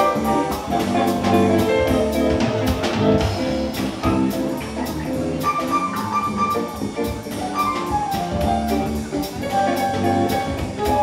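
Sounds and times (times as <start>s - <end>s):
drum kit beat: 0.0s - 11.0s.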